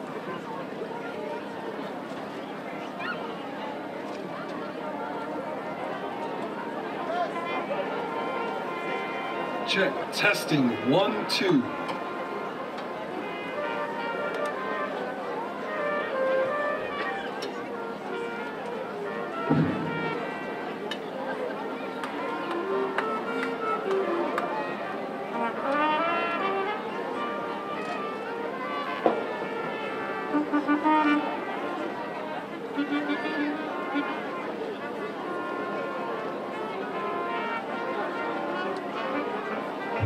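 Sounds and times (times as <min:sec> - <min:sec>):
brass instruments warming up: 0:07.4 - 0:21.3, 0:22.1 - 0:40.0.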